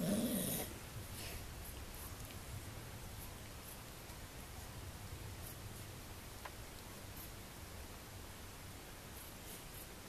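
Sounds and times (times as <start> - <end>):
dog play growl: 0.0 - 0.8.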